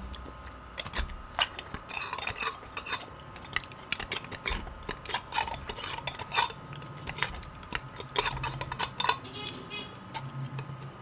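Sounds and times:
knife scraping against bone: 0.8s - 10.9s.

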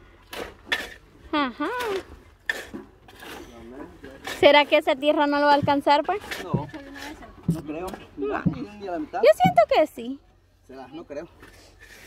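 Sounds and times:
shovel scraping stony soil: 0.2s - 1.1s, 1.7s - 5.3s, 11.4s - 12.0s.

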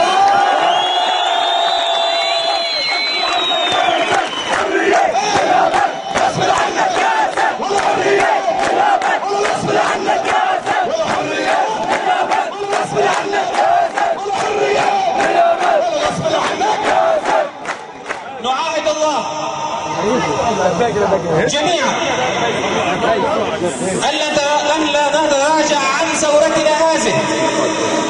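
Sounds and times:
crowd of men chanting: 2.8s - 18.0s
hand-clapping: 3.2s - 18.3s.

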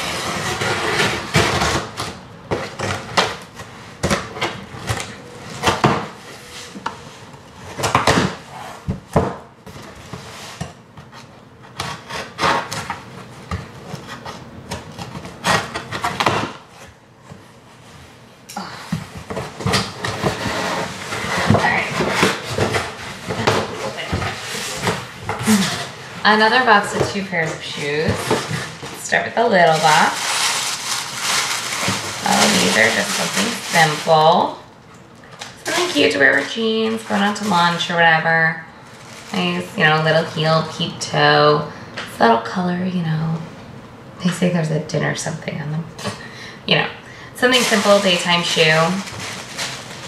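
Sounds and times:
boxes knocking and scraping: 18.8s - 30.4s.

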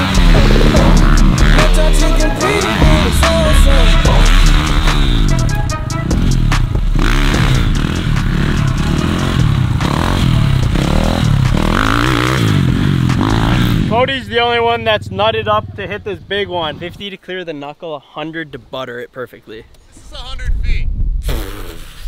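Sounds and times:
background music: 0.0s - 15.6s
dirt bike engines revving: 0.0s - 17.0s.

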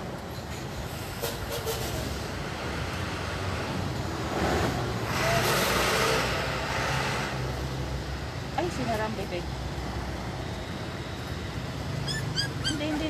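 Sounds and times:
vehicle passing by: 1.6s - 13.0s.

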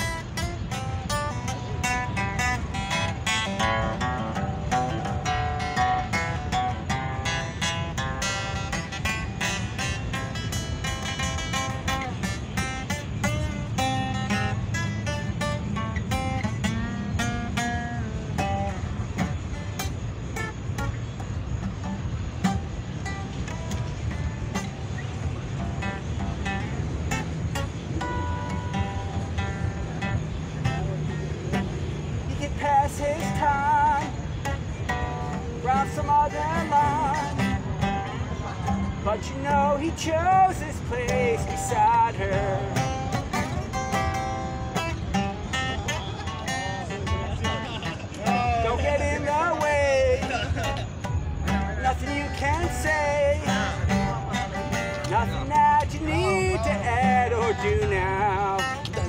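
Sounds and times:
acoustic guitar strummed: 0.0s - 59.0s.

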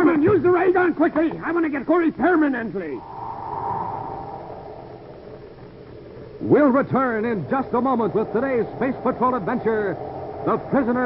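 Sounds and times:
rushing noise: 3.0s - 6.4s.

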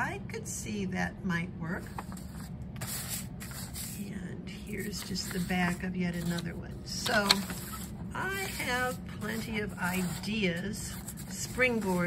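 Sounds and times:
steady low hum: 0.0s - 12.0s
paper rustling and sliding: 1.9s - 4.0s, 4.8s - 6.4s, 7.0s - 12.0s.

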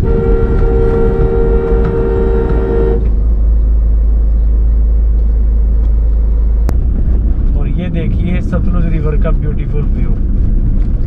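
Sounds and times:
car horn two-note tone: 0.0s - 3.2s
car driving rumble: 0.0s - 11.0s.

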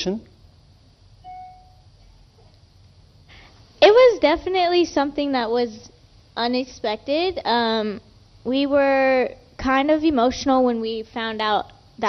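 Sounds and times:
faint short tone: 1.2s - 1.9s.

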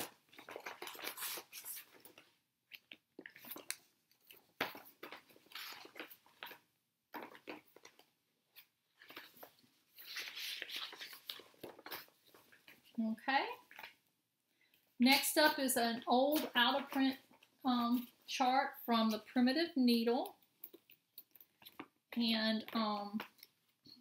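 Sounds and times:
paper and fabric rustling: 3.3s - 14.0s.

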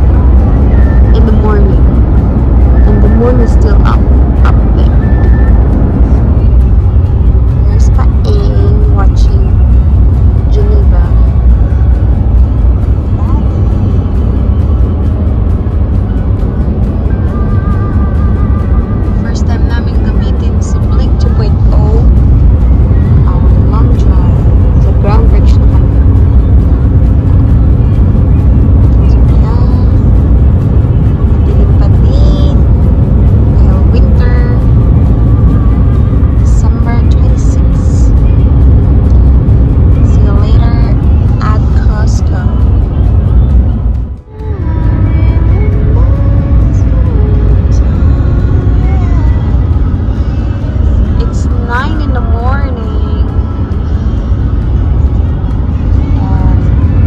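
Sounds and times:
vehicle cabin road rumble: 0.0s - 57.0s.

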